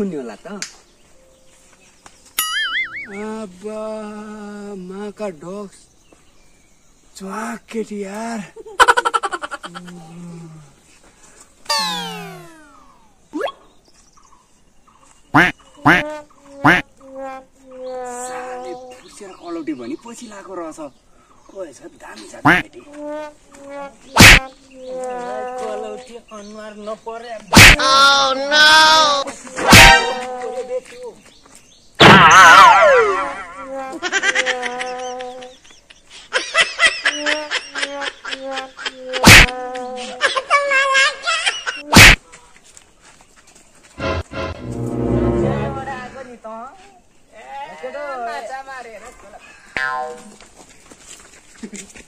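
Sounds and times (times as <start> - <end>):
sharp rising chirps: 2.4 - 3.4, 11.7 - 13.7, 44.0 - 46.3
comedic hit: 11.7 - 12.7, 24.2 - 24.4, 27.6 - 27.8, 29.6 - 30.2, 32.0 - 33.5, 39.2 - 39.5, 42.0 - 42.2
falling whistle glide: 11.7 - 12.7
wavering tone sliding down: 11.7 - 12.7, 44.0 - 46.2
quick rising zip: 11.7 - 12.8.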